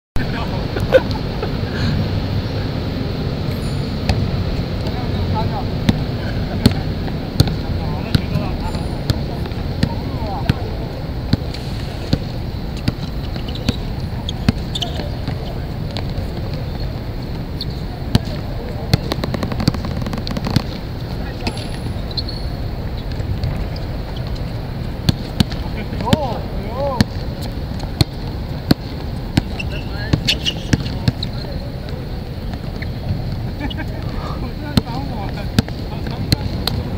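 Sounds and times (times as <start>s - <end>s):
low background noise: 0.2s - 36.9s
steady background hiss: 0.2s - 36.9s
basketball bouncing on court: 5.9s - 8.4s, 9.0s - 10.7s, 12.1s - 17.4s, 18.1s - 20.8s, 23.0s - 26.4s, 27.0s - 31.5s, 34.7s - 36.9s
basketball bouncing on hard court: 7.4s - 8.4s, 18.1s - 20.8s, 25.0s - 26.4s, 27.9s - 31.3s, 34.7s - 36.9s.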